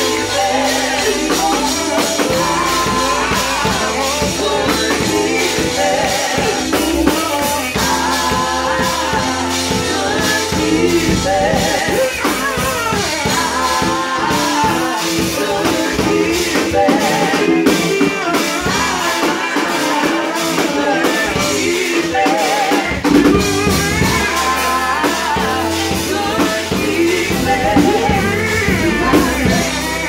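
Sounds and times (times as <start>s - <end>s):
band playing: 0.0s - 30.0s
drum kit: 0.0s - 30.0s
vocal group singing gospel: 0.0s - 30.0s.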